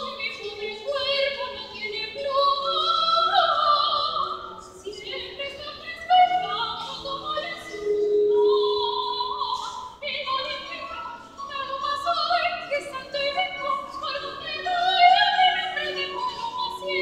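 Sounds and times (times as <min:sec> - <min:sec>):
woman singing opera: 0:00.0 - 0:17.0.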